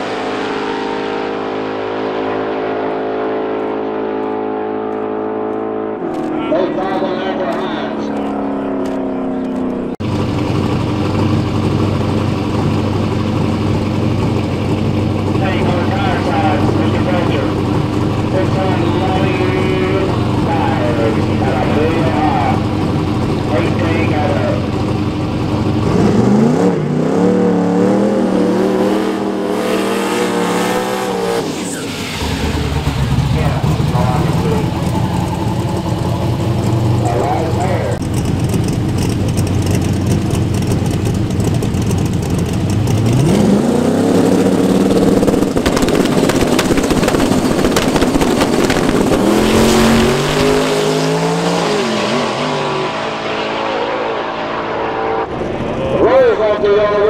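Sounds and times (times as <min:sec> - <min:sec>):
car engines revving: 0:00.0 - 0:57.0
cars launching and shifting gears: 0:00.0 - 0:57.0.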